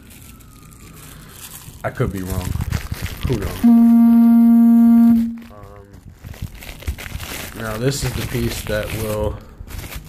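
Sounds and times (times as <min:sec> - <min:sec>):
packaging rustling: 0:00.0 - 0:03.7, 0:05.4 - 0:10.0
faint rising and falling tone: 0:03.6 - 0:05.5.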